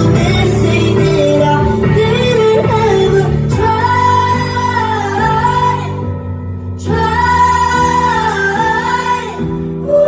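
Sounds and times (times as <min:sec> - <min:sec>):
live band playing: 0:00.0 - 0:10.0
woman singing into microphone: 0:00.0 - 0:10.0.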